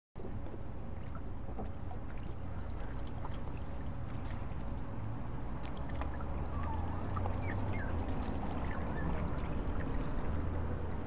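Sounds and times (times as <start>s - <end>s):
water splashing in a pool: 0.2s - 11.0s.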